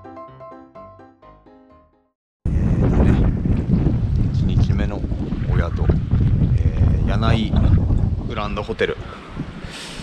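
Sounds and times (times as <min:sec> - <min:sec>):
wind buffeting microphone: 0:02.5 - 0:10.0.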